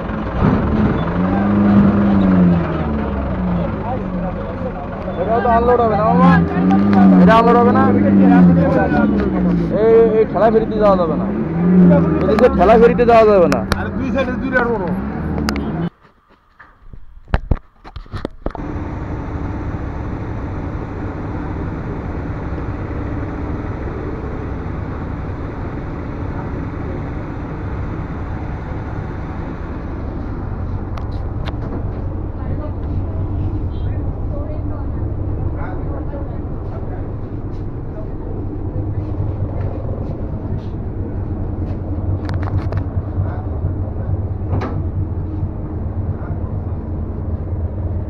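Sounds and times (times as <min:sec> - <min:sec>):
ferry engine droning: 0:00.0 - 0:16.0, 0:18.5 - 0:48.0
people's voices: 0:01.1 - 0:15.9, 0:25.5 - 0:44.8.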